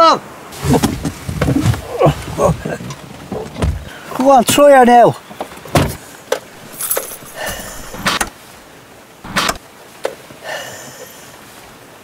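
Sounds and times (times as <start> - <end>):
car keys rattling: 6.6 - 8.3
engine cranking bursts: 6.6 - 8.3, 9.3 - 9.6
ignition clicks: 9.3 - 9.6.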